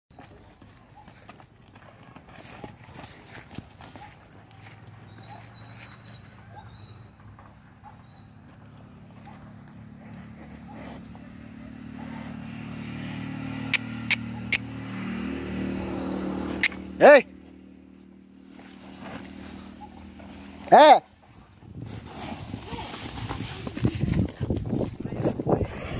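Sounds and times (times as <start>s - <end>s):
low engine hum: 2.8s - 25.9s
sharp clicks: 16.6s - 16.8s.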